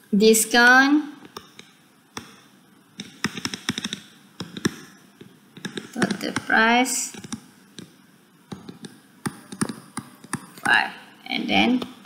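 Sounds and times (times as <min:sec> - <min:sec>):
stylus tapping on tablet screen: 0:01.2 - 0:10.7.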